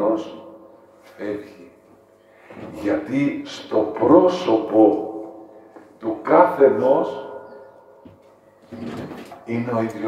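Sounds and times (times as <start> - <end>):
man speaking through microphone: 0.0 - 1.8, 2.6 - 5.4, 6.0 - 7.4, 9.4 - 10.0.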